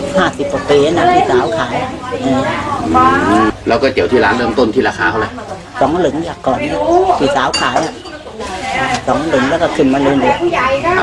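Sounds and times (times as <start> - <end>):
tableware clink: 7.4 - 8.3.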